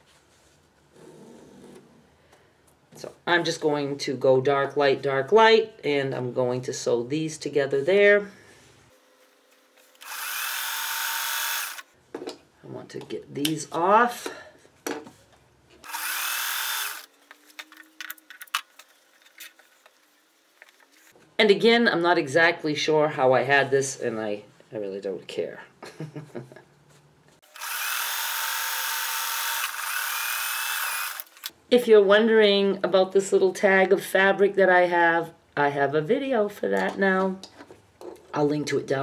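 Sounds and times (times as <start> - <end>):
soft rustle of fabric strips: 0.0 - 0.9
sewing machine running: 10.0 - 11.8, 15.9 - 17.1.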